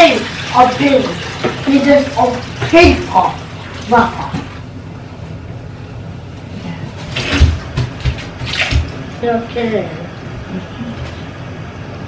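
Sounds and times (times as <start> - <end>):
water splashing: 7.0 - 9.0.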